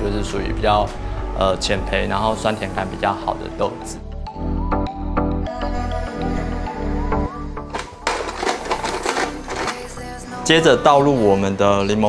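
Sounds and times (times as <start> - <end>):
ice crusher grinding ice: 7.7 - 10.0.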